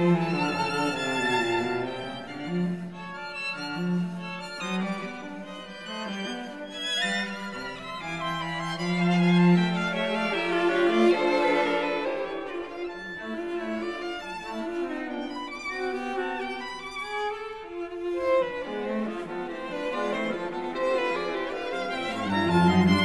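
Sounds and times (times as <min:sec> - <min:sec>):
string quartet playing: 0:00.0 - 0:23.0.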